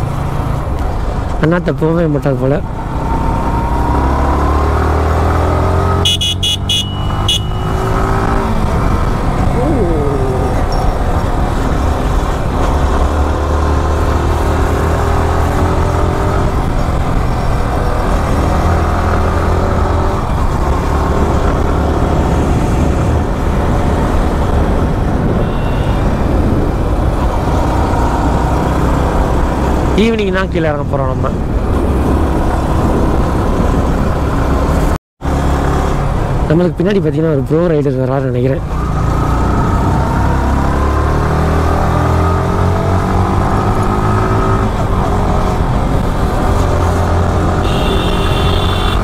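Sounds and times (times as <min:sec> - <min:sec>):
motorcycle engine accelerating: 0:02.6 - 0:30.4, 0:38.7 - 0:49.0
short horn beeps: 0:06.0 - 0:07.9, 0:25.4 - 0:26.1, 0:47.6 - 0:49.0
wind on microphone: 0:20.2 - 0:29.9, 0:31.2 - 0:34.8.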